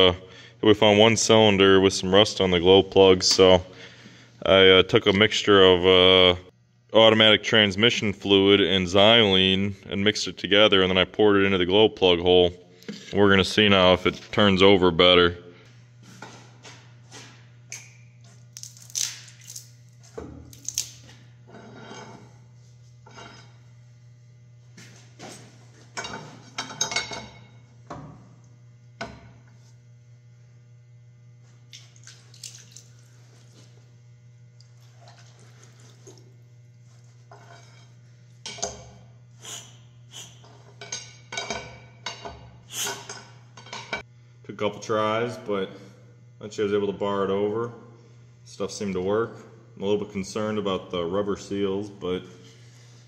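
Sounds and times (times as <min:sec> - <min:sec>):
steady low hum: 0:00.0 - 0:53.0.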